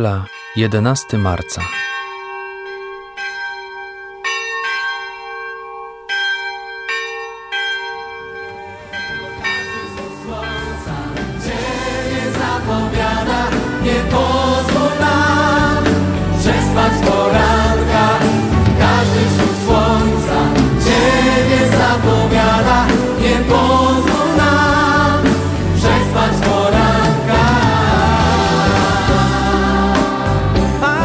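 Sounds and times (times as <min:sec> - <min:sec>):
bell ringing: 0:00.0 - 0:12.5
choral music: 0:08.7 - 0:31.0.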